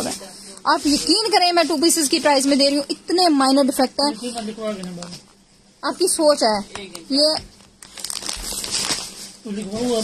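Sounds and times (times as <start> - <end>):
plastic bag crinkling: 6.9 - 10.0.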